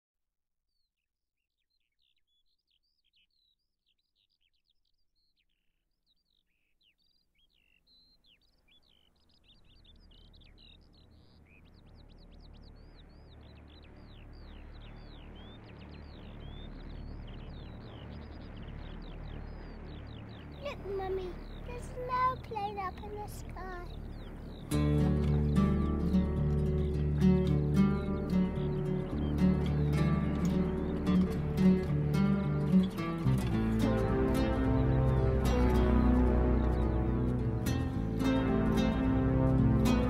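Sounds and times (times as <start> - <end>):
birds chirping: 1.6 - 40.0
low rumbling noise: 9.2 - 40.0.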